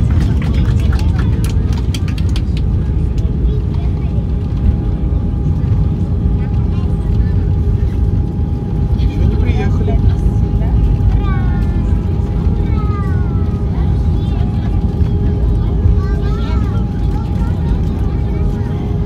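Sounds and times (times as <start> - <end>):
engine and wheel rumble: 0.0 - 19.0
steady cabin hum: 0.0 - 19.0
voices: 0.0 - 19.0.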